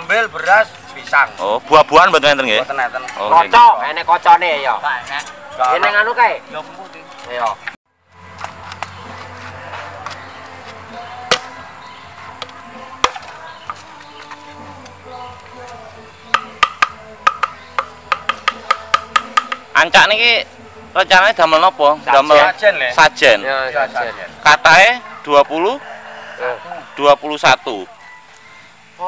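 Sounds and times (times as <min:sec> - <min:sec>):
background music: 0:00.0 - 0:29.0
machete chopping bamboo: 0:08.3 - 0:10.2, 0:11.2 - 0:11.6, 0:12.4 - 0:13.4, 0:16.3 - 0:19.7.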